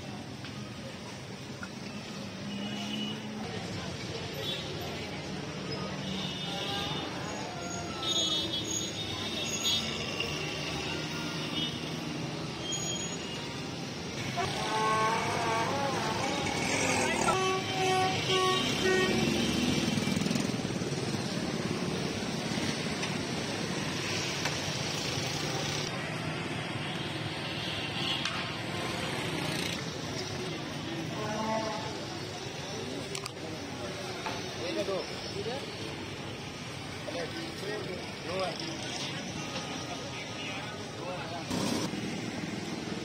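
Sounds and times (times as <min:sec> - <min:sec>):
traffic noise: 0:00.0 - 0:43.0
vehicle horn tooting: 0:14.3 - 0:16.5, 0:17.2 - 0:19.6.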